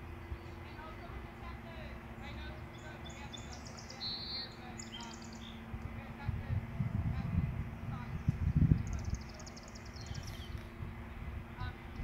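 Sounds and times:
faint steady hum: 0.0 - 12.0
songbird trilling: 2.2 - 5.7, 8.0 - 10.6
low rumble: 5.5 - 12.0.

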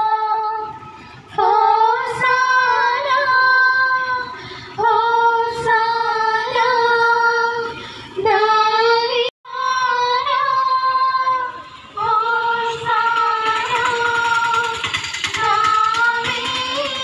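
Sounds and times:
women singing a hymn: 0.0 - 17.0.

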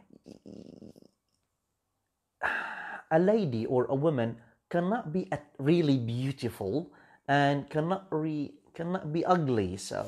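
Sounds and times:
man's throaty breath: 2.4 - 3.1.

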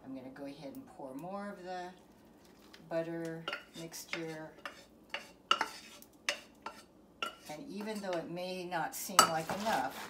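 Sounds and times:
metal saucepan clinking and scraping: 3.4 - 8.2, 9.2 - 9.9.

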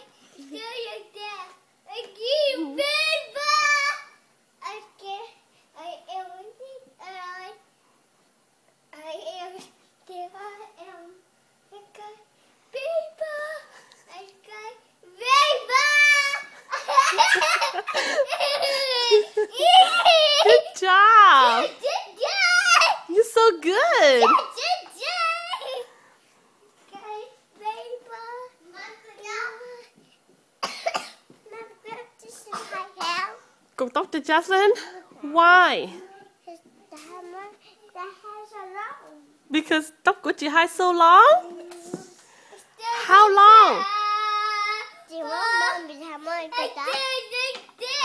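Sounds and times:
girl's high voice: 0.0 - 7.6, 12.8 - 17.6, 18.4 - 25.9, 42.8 - 48.0.

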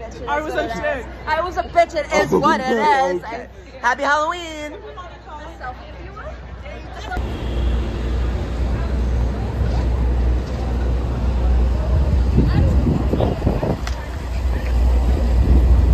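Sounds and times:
voices of passers-by: 0.0 - 15.9
low rumble of vehicles: 4.8 - 15.9.

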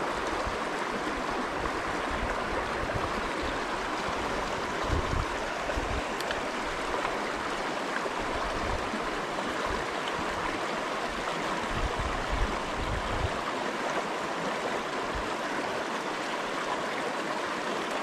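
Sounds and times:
stream rushing over rocks: 0.0 - 18.0.

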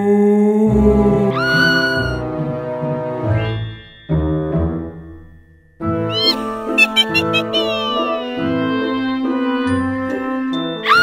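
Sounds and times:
spooky background music with bass: 0.7 - 5.3, 6.0 - 11.0
cat-like meow sound effect: 1.4 - 2.2, 6.1 - 8.4.

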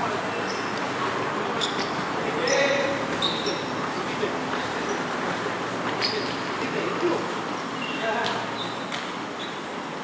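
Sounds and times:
short high squeaks: 1.5 - 3.8, 6.0 - 6.5, 7.8 - 9.7.

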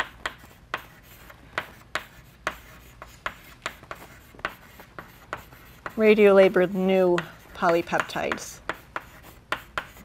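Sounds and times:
chalk writing on blackboard: 0.0 - 10.0.

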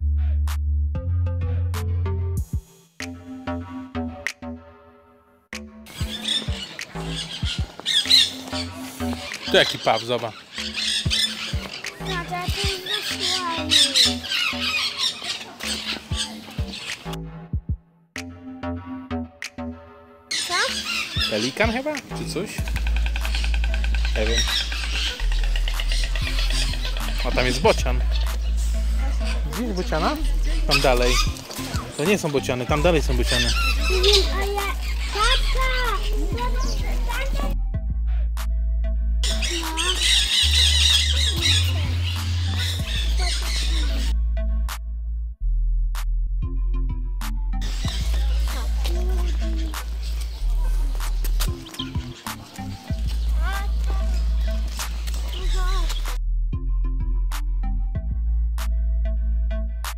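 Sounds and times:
background music with steady beat: 0.0 - 59.9
birds squawking and chattering: 5.9 - 17.2, 20.3 - 37.6, 39.2 - 44.4, 47.6 - 56.2.

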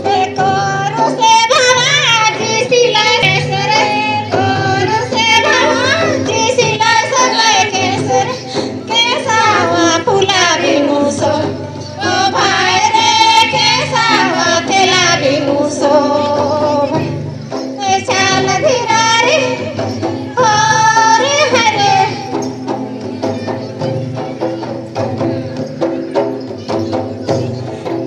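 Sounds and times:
women singing together: 0.0 - 22.6
hand drum beating: 0.0 - 28.0.

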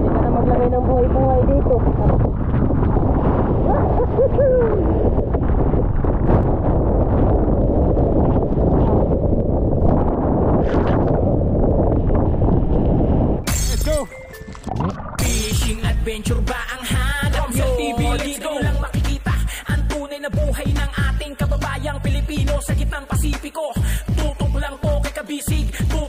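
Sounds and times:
wind buffeting microphone: 0.0 - 13.5
music: 13.5 - 26.0.

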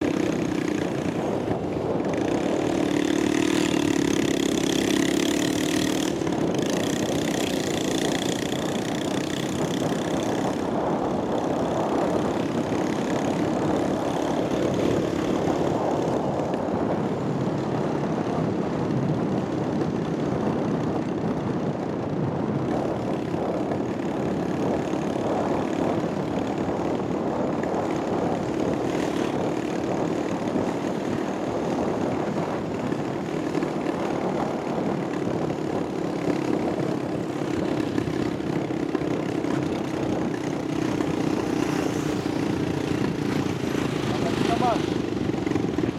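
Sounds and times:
car engine and tyres driving: 0.0 - 45.9.

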